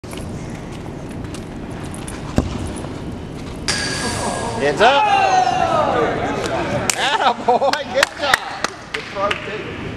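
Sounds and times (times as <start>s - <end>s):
busy indoor hall noise: 0.0s - 9.9s.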